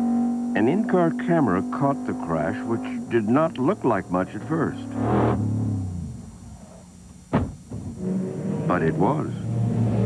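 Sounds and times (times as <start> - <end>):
race car engine running: 0.0 - 6.4.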